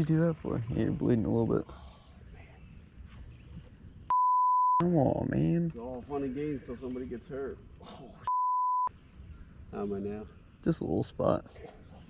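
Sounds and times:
high censor bleep: 4.1s - 4.8s, 8.3s - 8.9s.

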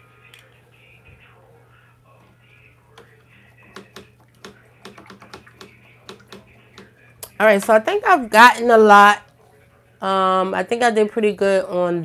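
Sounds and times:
faint steady hum: 0.0s - 12.0s
light irregular clicks and taps: 2.9s - 7.4s.

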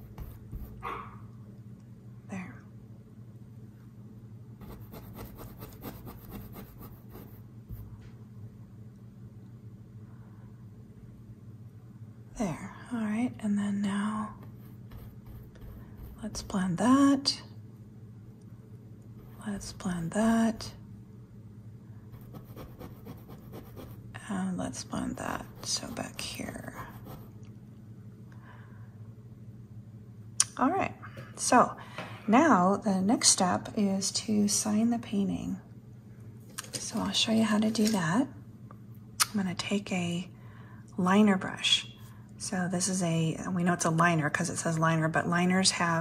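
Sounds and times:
low steady hum: 0.0s - 46.0s
dog barking: 0.8s - 1.3s.

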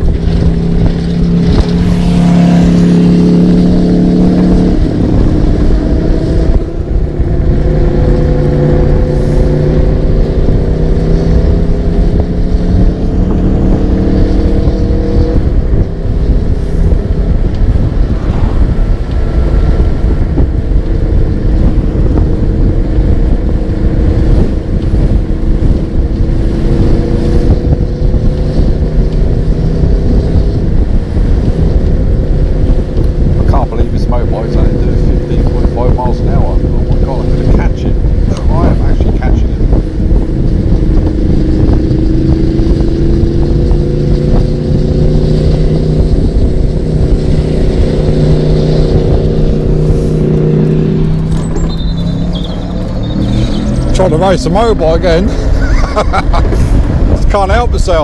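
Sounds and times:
road rumble: 0.0s - 58.0s
wind: 0.0s - 58.0s.

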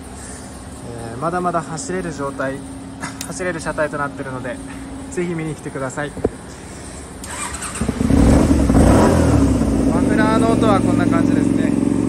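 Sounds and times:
motorcycle engine exhaust: 6.3s - 12.0s.

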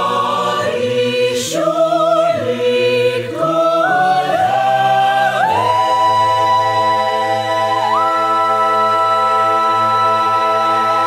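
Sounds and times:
a cappella choir singing a carol: 0.0s - 11.0s.

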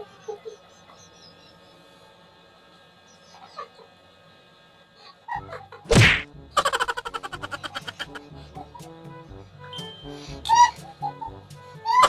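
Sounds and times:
breathy laughter: 6.6s - 8.9s.

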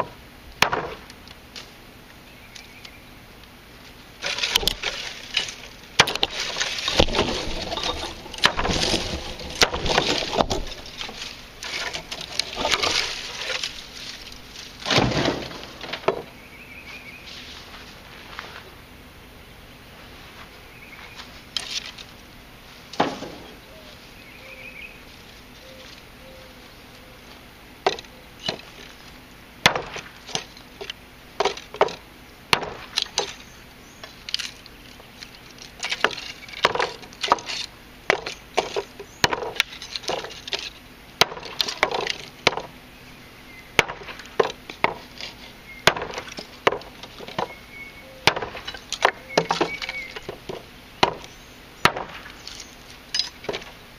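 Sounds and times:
knife chopping wood on a block: 0.6s - 1.1s, 36.6s - 40.2s, 45.9s - 47.5s, 48.2s - 52.3s.

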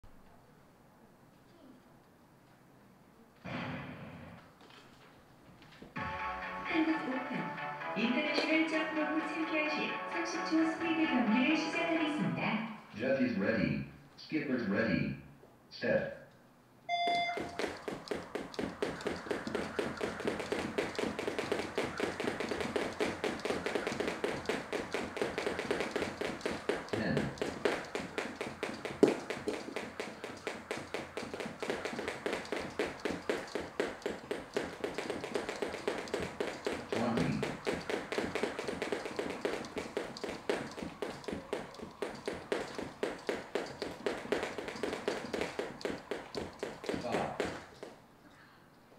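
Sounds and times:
jump ropes clicking on floor: 8.3s - 8.7s, 17.0s - 48.0s
start beep: 16.9s - 17.6s.

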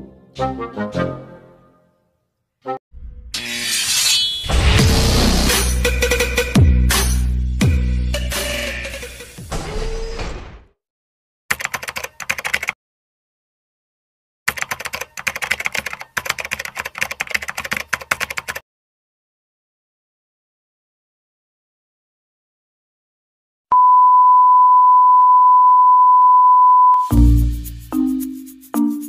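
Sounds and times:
keyboard typing clicks: 11.5s - 12.8s, 14.5s - 18.6s
sine test tone: 23.7s - 27.1s.

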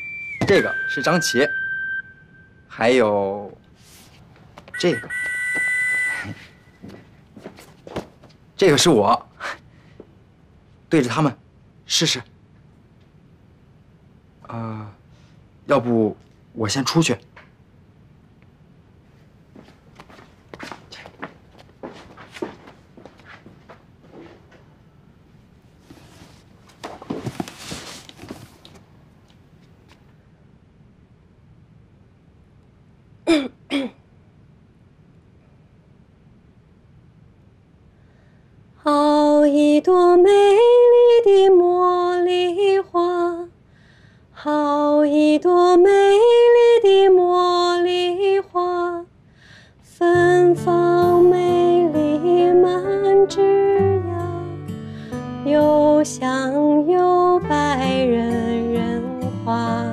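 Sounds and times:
two-pitch whistle-like tone: 0.0s - 2.8s, 4.8s - 6.8s
woman clearing her throat: 33.2s - 34.0s.

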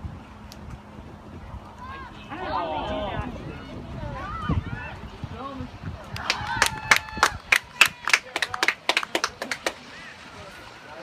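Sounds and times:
people shouting: 1.8s - 5.0s
spectators clapping: 6.1s - 9.8s.

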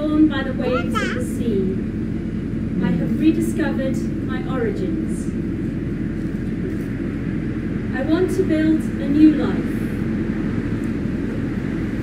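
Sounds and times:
low outdoor background rumble: 0.0s - 12.0s.

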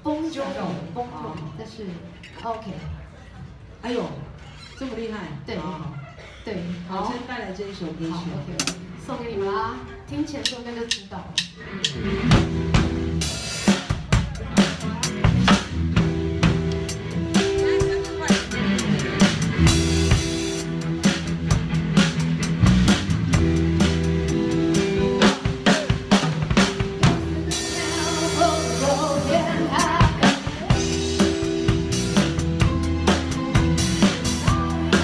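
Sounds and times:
drum kit groove: 8.5s - 9.0s, 10.3s - 35.0s
backing track bass notes: 10.9s - 35.0s.

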